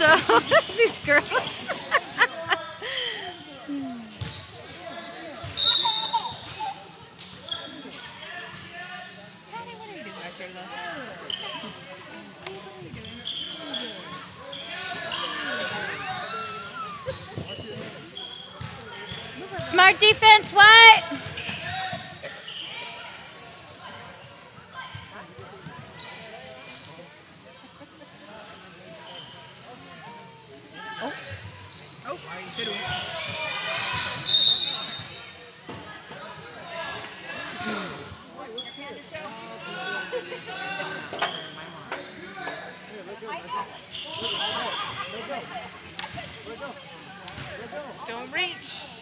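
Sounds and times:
spectators chattering: 0.0s - 49.0s
sneakers squeaking on hardwood: 4.2s - 6.7s.

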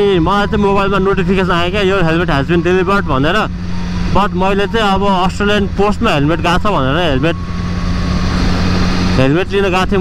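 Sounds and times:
man talking: 0.0s - 7.4s, 9.2s - 10.0s
motorcycle engine cruising: 0.0s - 10.0s
wind and road noise: 0.0s - 10.0s.

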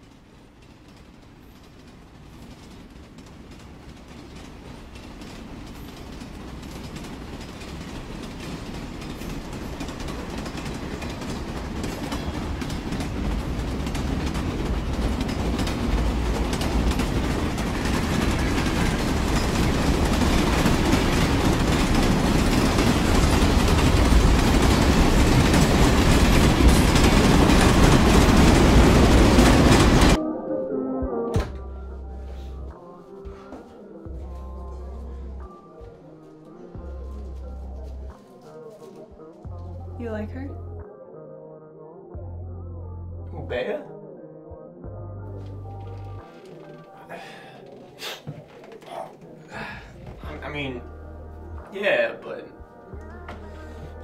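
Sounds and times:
train-like rumble with rattle: 0.0s - 30.2s.

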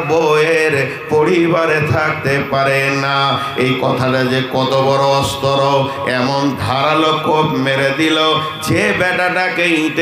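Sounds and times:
man preaching in chanted delivery: 0.0s - 10.0s.

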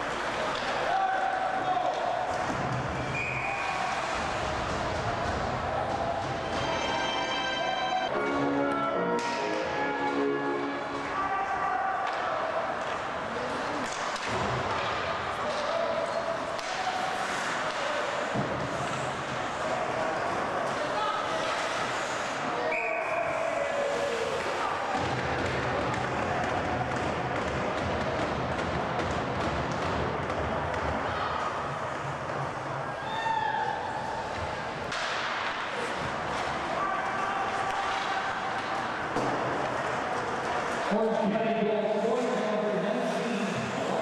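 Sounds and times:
sticks and puck clacking: 0.0s - 7.7s, 8.3s - 22.6s, 24.0s - 41.4s.

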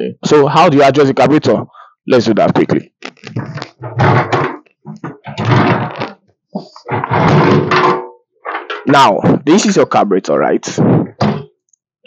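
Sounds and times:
knocking and scraping on plastic: 3.1s - 9.4s, 10.8s - 11.6s.

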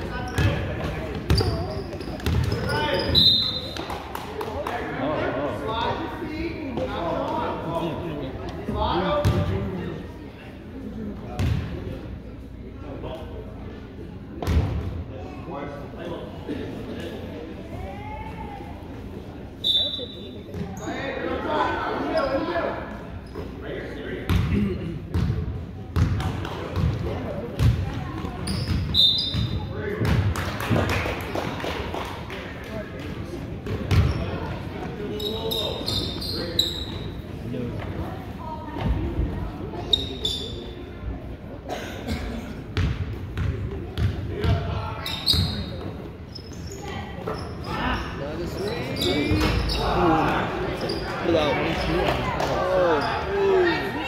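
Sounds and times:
background chatter: 0.0s - 54.0s.

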